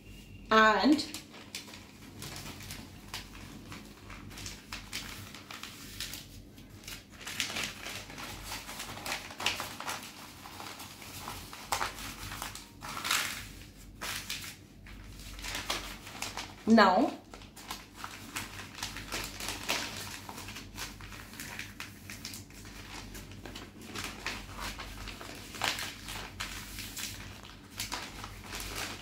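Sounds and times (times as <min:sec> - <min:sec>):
newspaper rustling and crinkling: 0:00.9 - 0:29.0.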